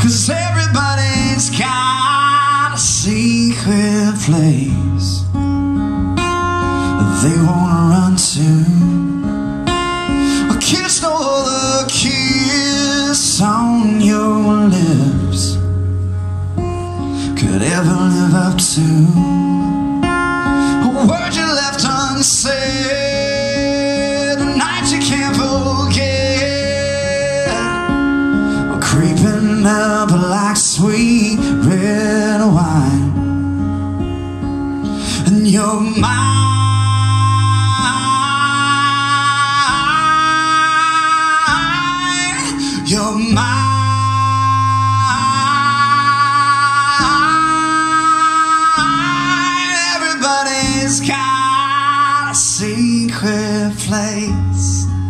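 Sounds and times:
man singing: 0.0s - 5.8s, 6.4s - 15.8s, 16.8s - 33.8s, 34.5s - 55.0s
acoustic guitar strumming: 0.0s - 55.0s.

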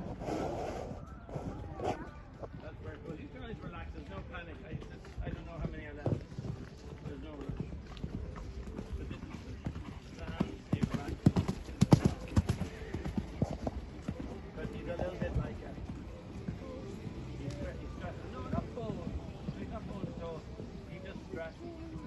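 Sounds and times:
hoofbeats on sand: 0.0s - 22.0s.

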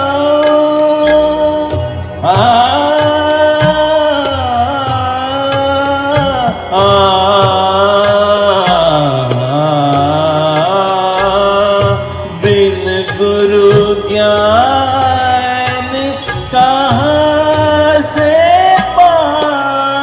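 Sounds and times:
instrumental backing track: 0.0s - 20.0s.

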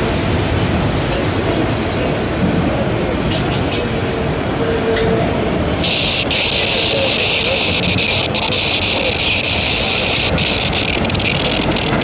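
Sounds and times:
steel wheels rumbling on rail: 0.0s - 12.0s
clacks: 10.3s - 12.0s.

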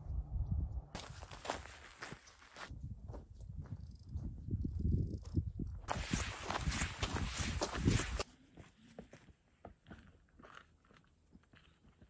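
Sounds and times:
footsteps on gravel trail: 1.0s - 3.8s, 5.9s - 12.0s.

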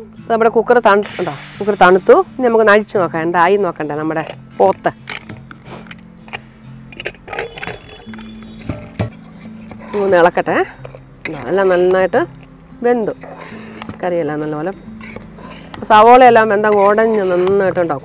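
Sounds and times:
background music: 0.0s - 18.0s
woman speaking: 0.3s - 5.0s, 9.9s - 10.7s, 11.3s - 13.2s, 14.0s - 14.8s, 15.8s - 18.0s.

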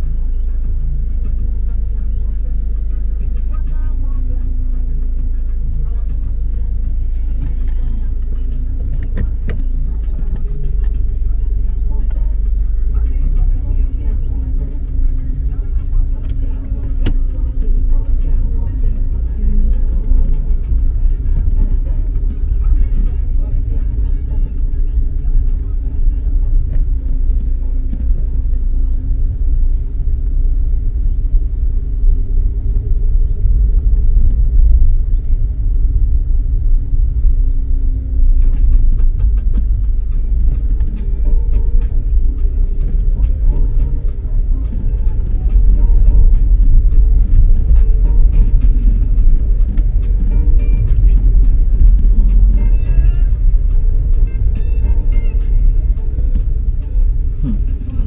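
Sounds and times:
tyre and road rumble: 0.0s - 58.0s.

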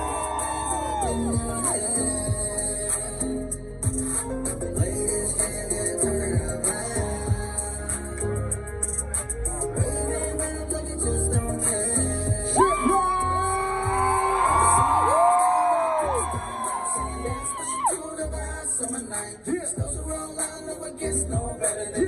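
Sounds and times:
voices whooping: 0.0s - 2.2s, 12.6s - 18.2s
live music with bass beat: 0.0s - 22.0s.

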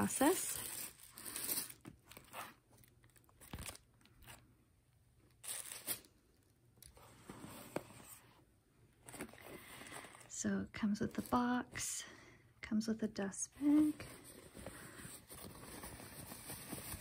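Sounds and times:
rustling of paper packaging: 0.0s - 4.5s, 13.8s - 17.0s.

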